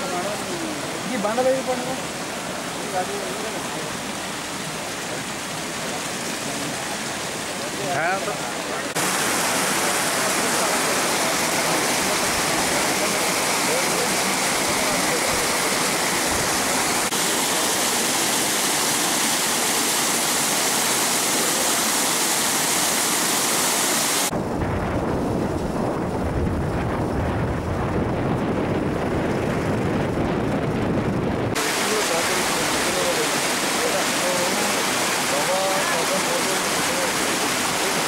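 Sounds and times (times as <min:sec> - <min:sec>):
water rushing over embankment: 0:00.0 - 0:38.0.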